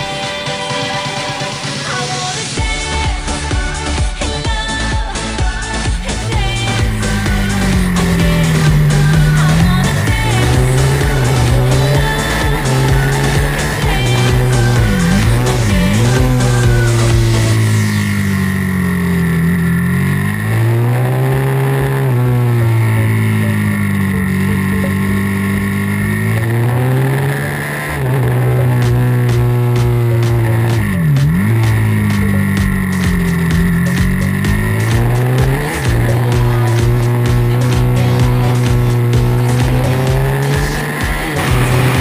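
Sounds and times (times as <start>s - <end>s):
motorcycle engine revving: 0.0s - 42.0s.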